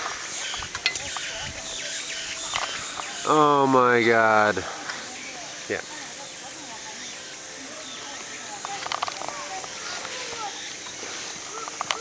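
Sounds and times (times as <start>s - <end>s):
faint voices: 0.0s - 12.0s
open-air hiss: 0.0s - 12.0s.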